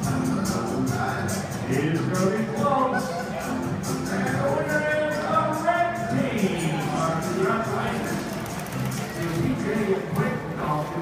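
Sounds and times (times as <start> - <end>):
crowd noise: 0.0 - 11.0
music: 0.0 - 11.0
public address voice: 1.7 - 11.0.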